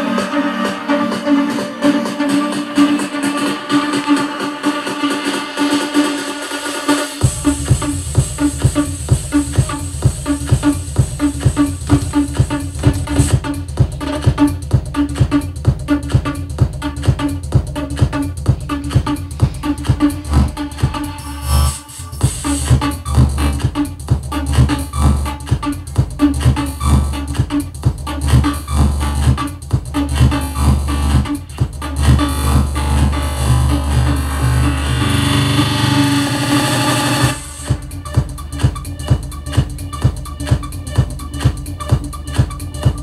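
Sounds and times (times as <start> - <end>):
electronic dance music: 0.0 - 43.0
steady kick drum: 0.0 - 43.0.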